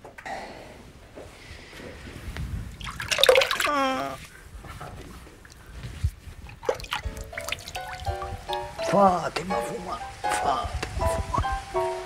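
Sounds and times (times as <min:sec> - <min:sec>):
water dripping: 0:02.8 - 0:04.1, 0:06.4 - 0:10.9
held musical notes: 0:06.8 - 0:12.0.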